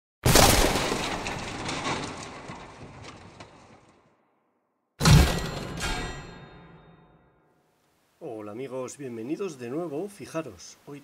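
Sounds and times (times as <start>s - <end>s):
crash: 0.2s - 4.3s, 5.0s - 7.4s
small blocks tumbling and clattering: 0.3s - 4.2s.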